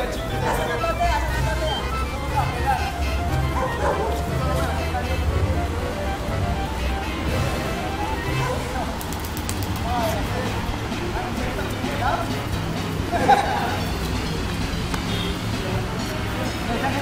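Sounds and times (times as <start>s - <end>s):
background music: 0.0s - 17.0s
people calling out and shouting: 0.0s - 17.0s.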